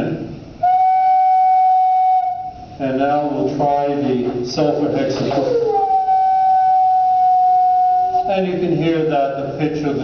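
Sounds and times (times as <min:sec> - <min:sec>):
wooden organ pipe note: 0:00.6 - 0:02.8, 0:04.2 - 0:08.3.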